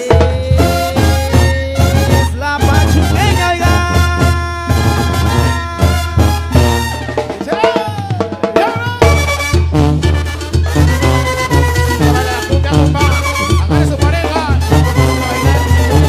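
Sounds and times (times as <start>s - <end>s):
bass drum and snare beat: 0.0s - 16.0s
brass band playing: 0.0s - 16.0s.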